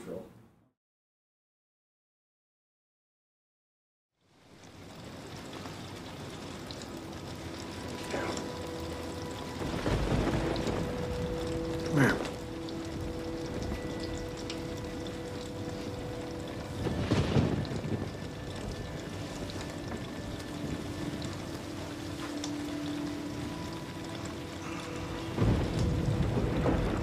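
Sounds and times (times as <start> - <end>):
steady rain: 4.2 - 27.0
faint musical drone: 4.6 - 27.0
thunder rumbling: 4.8 - 27.0.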